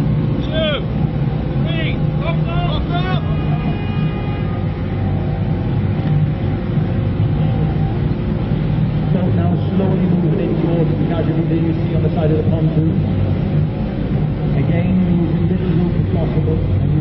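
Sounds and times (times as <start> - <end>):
outboard engine running: 0.0 - 17.0
water churning: 0.0 - 17.0.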